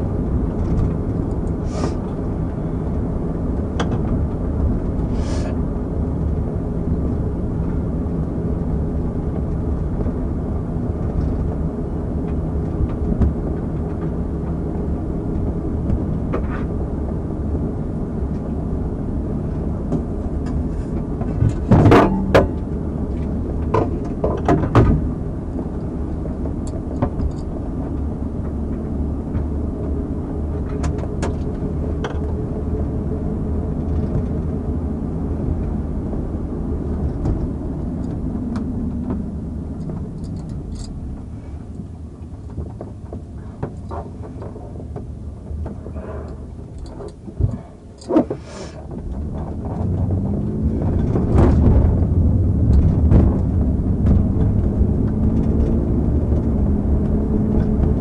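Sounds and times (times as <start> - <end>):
low vehicle engine rumble: 0.0 - 58.0
sharp knocks: 21.6 - 22.7.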